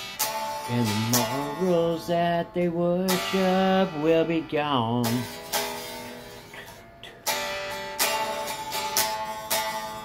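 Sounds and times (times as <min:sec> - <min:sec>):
guitar strumming chords: 0:00.0 - 0:10.0.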